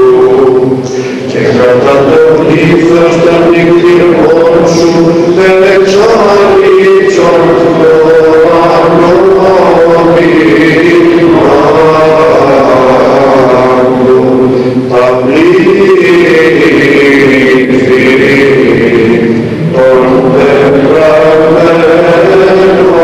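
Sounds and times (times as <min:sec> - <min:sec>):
voices chanting long notes: 0:00.0 - 0:23.0.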